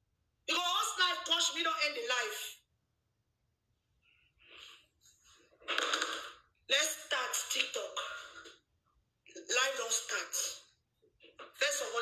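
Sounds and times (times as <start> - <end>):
woman talking: 0.5 - 2.6, 6.7 - 8.5, 9.3 - 10.7, 11.5 - 12.0.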